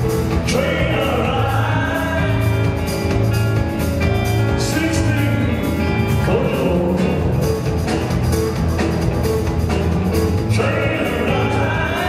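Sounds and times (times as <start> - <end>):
rock and roll band playing: 0.0 - 12.0.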